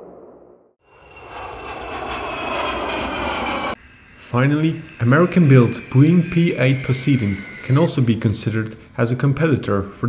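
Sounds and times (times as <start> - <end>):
jet engines passing overhead: 0.8 - 10.0.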